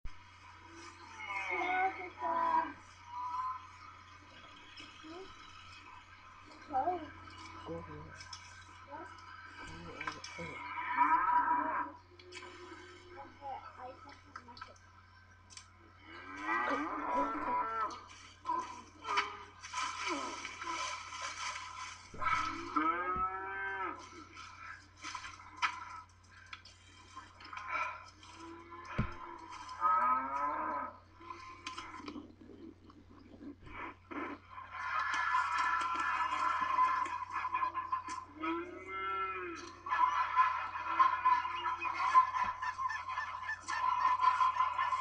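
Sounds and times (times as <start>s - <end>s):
cow mooing: 22.2s - 24.0s.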